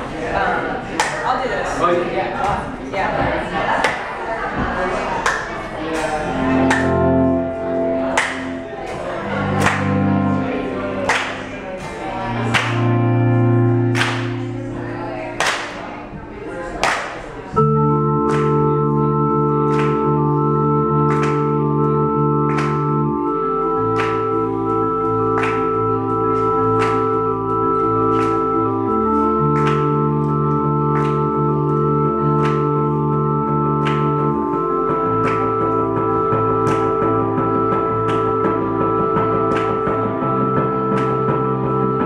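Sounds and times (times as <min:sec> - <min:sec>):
organ keyboard chords: 0:00.0 - 0:42.0.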